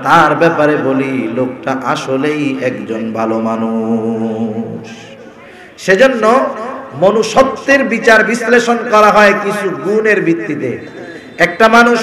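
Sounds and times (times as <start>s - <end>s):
man chanting a sermon: 0.0s - 5.2s, 5.8s - 10.8s.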